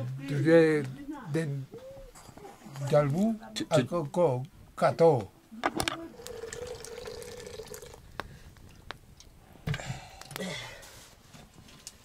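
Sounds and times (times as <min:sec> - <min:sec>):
liquid pouring into vessel: 0:06.1 - 0:08.0.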